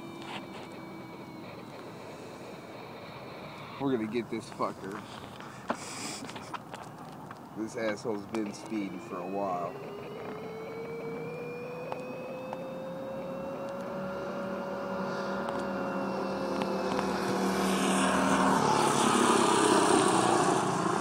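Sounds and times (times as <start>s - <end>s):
small engine running hard: 0.0s - 21.0s.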